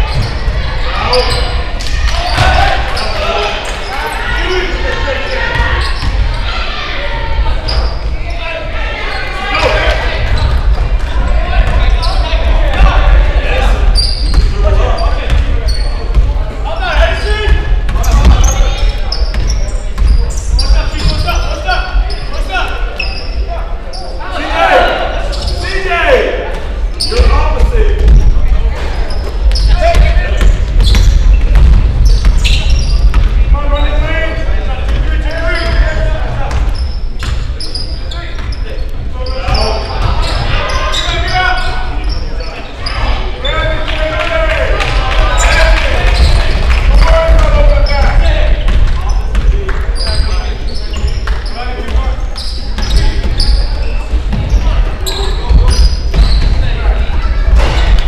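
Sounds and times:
shouts and chatter echoing: 0.0s - 58.0s
basketball bouncing on hardwood: 48.7s - 49.5s.

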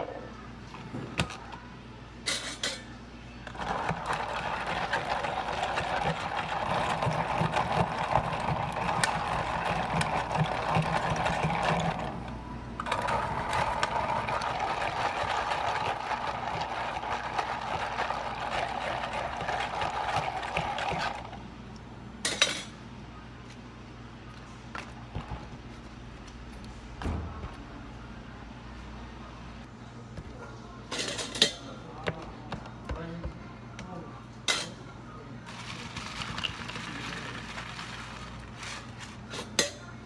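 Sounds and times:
ice scraping in plastic cup: 3.5s - 12.1s, 12.9s - 21.3s, 35.5s - 39.5s.

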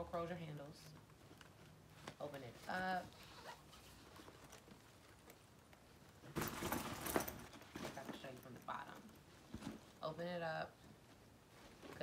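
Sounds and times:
fabric rustle: 0.0s - 12.0s.

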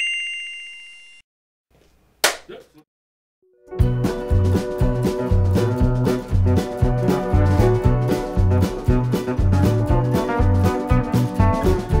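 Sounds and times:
bell ding with rattling trill: 0.0s - 1.2s.

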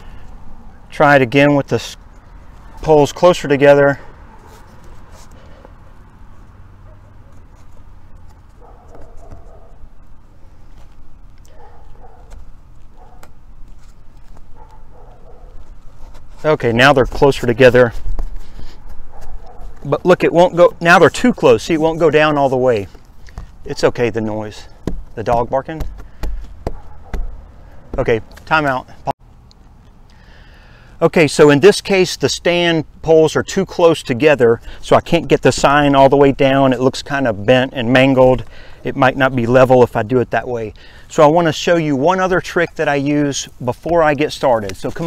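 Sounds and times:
dog barking: 8.6s - 9.8s, 11.5s - 12.4s, 13.0s - 13.3s, 14.6s - 15.6s, 19.1s - 19.8s, 26.7s - 27.3s
people talking: 16.4s - 18.0s, 23.7s - 25.8s, 28.0s - 28.9s, 31.0s - 45.0s.

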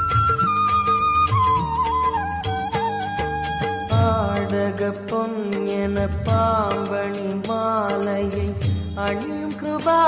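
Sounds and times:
instrumental backing: 0.0s - 10.0s.

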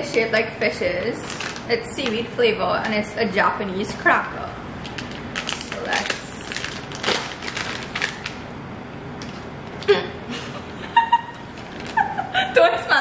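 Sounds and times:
foil snack bag crinkling: 1.0s - 3.1s, 4.8s - 8.4s, 11.5s - 12.2s.

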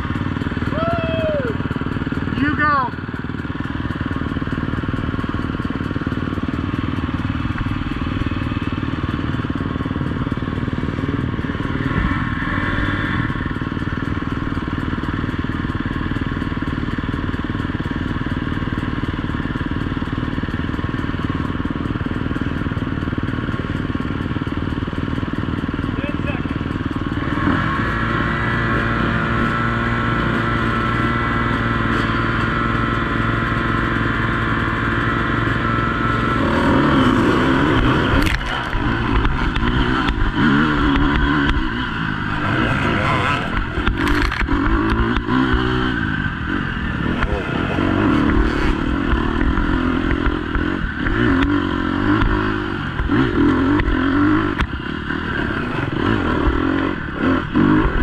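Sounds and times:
dirt bike engines idling: 0.0s - 58.0s.

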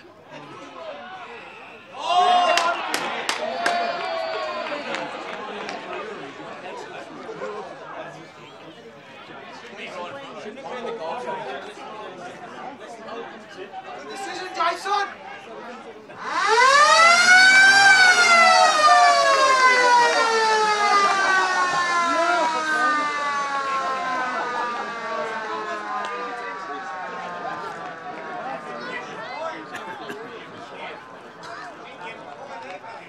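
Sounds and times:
spectators chatting and calling out: 0.0s - 33.0s
siren wailing: 16.2s - 29.5s.

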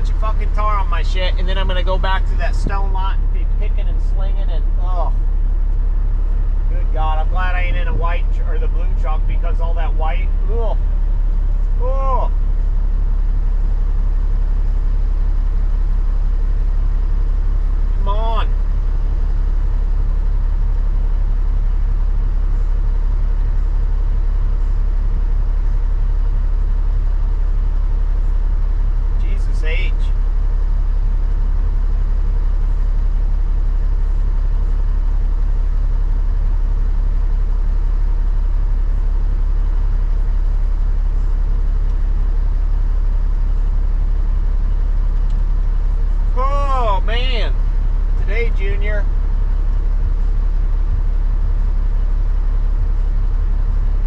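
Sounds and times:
diesel truck engine idling: 0.0s - 54.0s.

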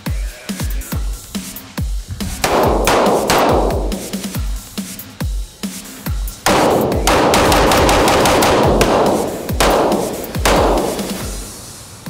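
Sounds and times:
electronic music with heavy beat: 0.0s - 11.5s
pistol shots: 2.2s - 4.7s, 6.4s - 11.5s.

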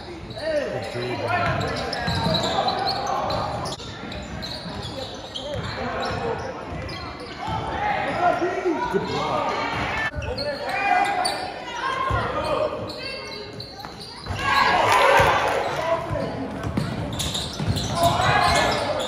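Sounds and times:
shouts and chatter echoing: 0.0s - 19.0s.

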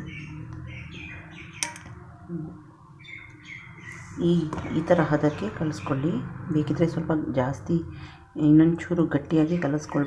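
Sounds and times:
small birds chirping: 0.0s - 6.4s.

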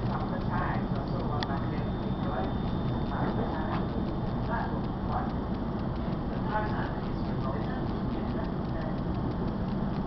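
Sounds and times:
faint clicks: 0.0s - 10.0s.

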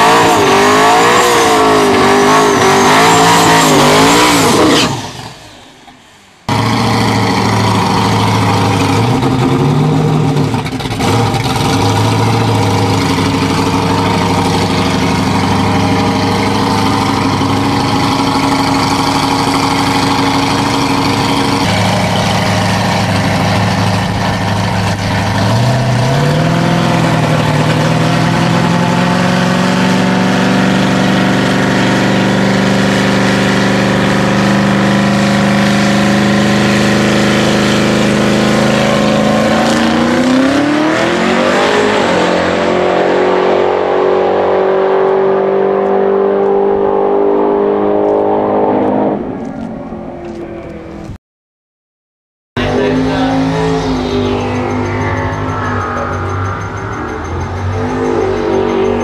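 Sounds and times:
drag car engine running loudly: 0.0s - 44.5s, 52.6s - 59.0s.

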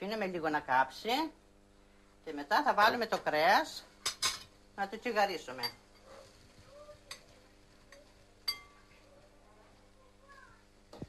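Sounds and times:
kitchenware clinking: 4.0s - 4.6s, 5.5s - 6.1s, 7.0s - 9.0s.

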